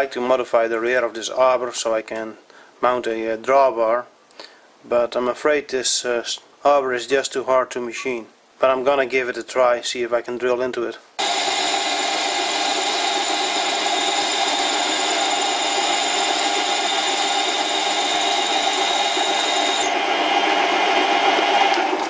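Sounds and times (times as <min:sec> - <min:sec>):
drill bit squealing on steel: 0:11.2 - 0:19.9
metal lathe running: 0:11.2 - 0:22.0.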